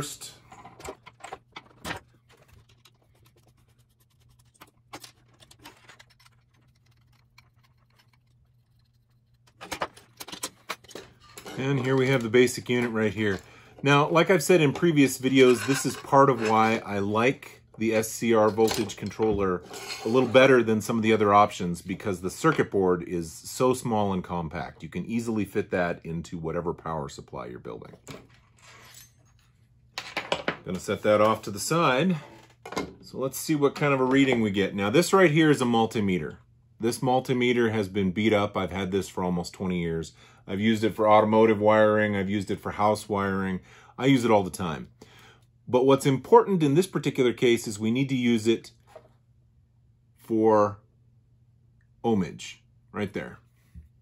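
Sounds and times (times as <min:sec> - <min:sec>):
wires and connectors rattling: 0:00.0 - 0:16.8.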